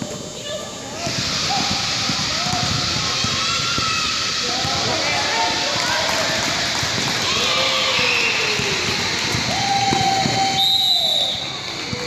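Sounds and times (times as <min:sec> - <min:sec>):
spectators' voices: 0:00.0 - 0:12.0
basketball bouncing on court: 0:01.0 - 0:05.0, 0:07.9 - 0:10.6
referee's whistle blast: 0:10.2 - 0:11.5.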